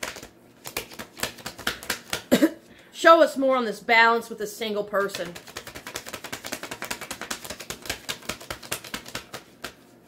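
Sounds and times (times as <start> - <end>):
cards being shuffled: 0.0 - 2.3, 5.0 - 10.0.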